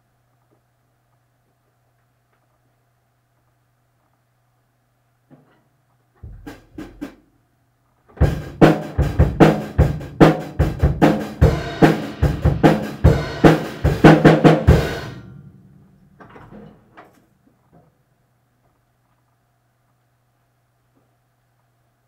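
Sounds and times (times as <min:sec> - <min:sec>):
drums and cymbals beat: 0:08.2 - 0:15.3.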